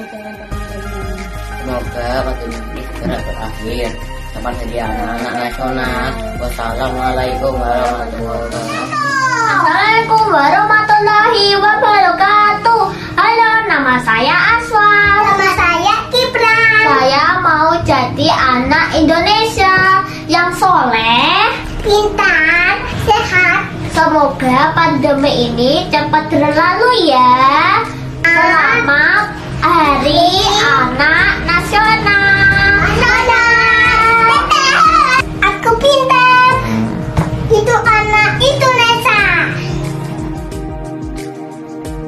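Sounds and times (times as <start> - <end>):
young children singing: 30.4 - 35.2.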